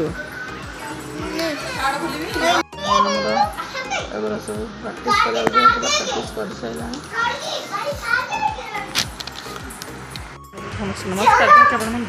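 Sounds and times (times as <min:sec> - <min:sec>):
young child talking: 0:05.0 - 0:06.4, 0:07.1 - 0:09.0.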